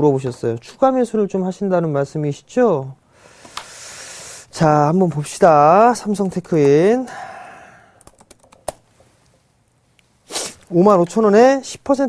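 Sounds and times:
computer keyboard typing: 8.0s - 8.8s.

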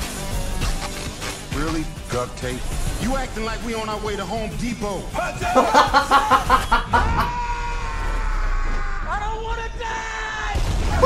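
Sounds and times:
man laughing hard: 5.4s - 7.4s.

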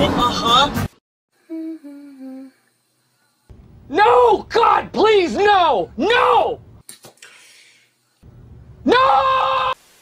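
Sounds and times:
person humming into a bottle: 1.4s - 2.7s.

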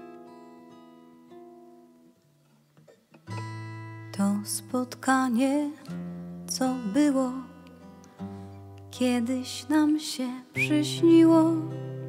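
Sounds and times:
fingerpicked acoustic guitar: 0.0s - 12.0s
woman singing with vibrato: 4.2s - 5.9s, 6.5s - 7.6s, 9.0s - 11.8s.

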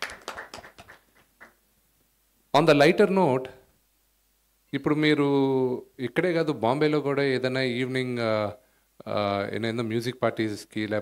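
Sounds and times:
small group clapping: 0.0s - 1.6s.

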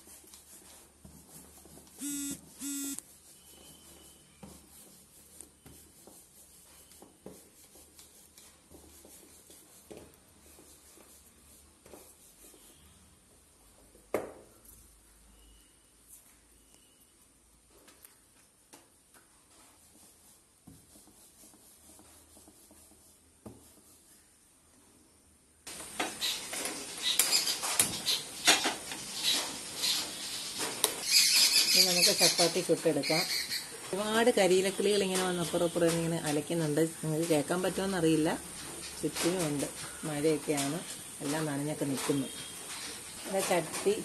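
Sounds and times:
short electronic beeps: 2.0s - 3.0s
buzzy steady tone: 2.0s - 3.5s
faint knocks and rustles: 33.8s - 44.0s.

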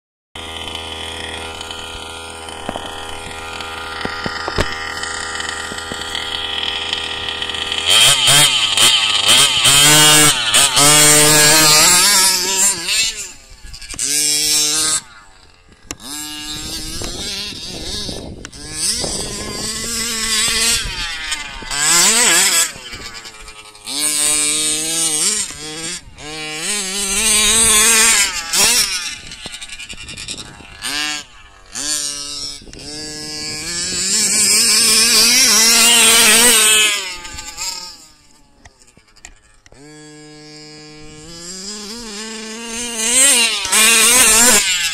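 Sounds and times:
model buggy engine revving: 0.4s - 44.9s.

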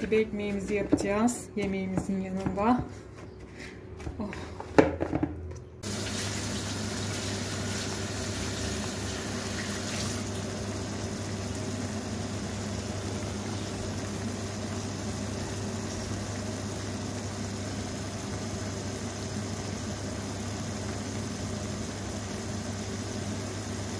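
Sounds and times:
vegetables sizzling in a frying pan: 5.8s - 23.9s.

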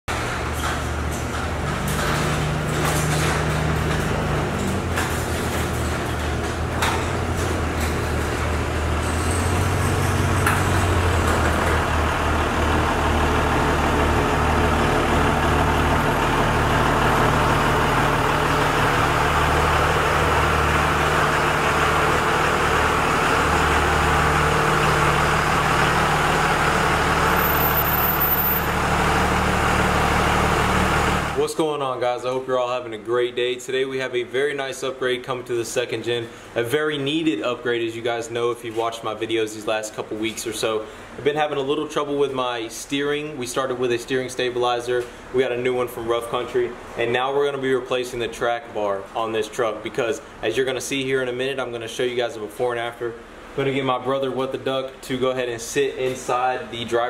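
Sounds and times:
diesel engine running: 0.1s - 31.5s.

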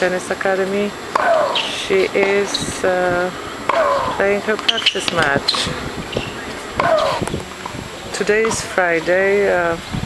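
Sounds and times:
tennis balls struck by rackets: 1.1s - 2.4s, 3.7s - 8.7s.

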